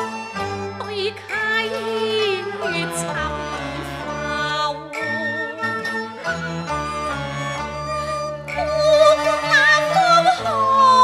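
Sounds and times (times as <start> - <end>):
traditional instrumental ensemble: 0.0 - 11.0
woman singing opera: 0.8 - 5.8, 8.6 - 11.0.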